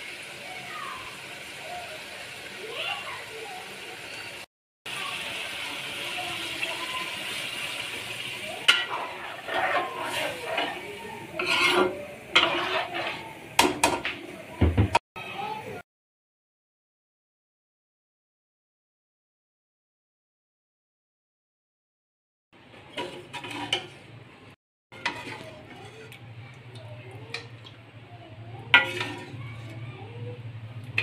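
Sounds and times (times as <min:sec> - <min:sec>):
metal spoon scraping pan: 0:08.5 - 0:14.1, 0:22.9 - 0:24.1, 0:24.9 - 0:26.2, 0:28.6 - 0:29.8.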